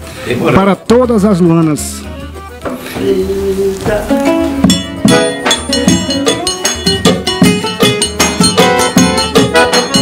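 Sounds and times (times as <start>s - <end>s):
accordion melody: 1.6s - 10.0s
bass drum: 1.8s - 10.0s
strummed acoustic guitar: 2.0s - 10.0s.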